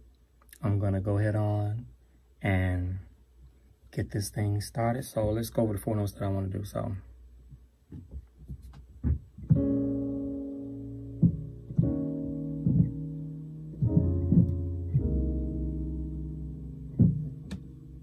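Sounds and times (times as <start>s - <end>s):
short knocks: 7.9s - 9.8s, 11.2s - 12.0s, 12.6s - 13.0s, 17.0s - 17.7s
electric keyboard piano notes: 9.4s - 18.0s.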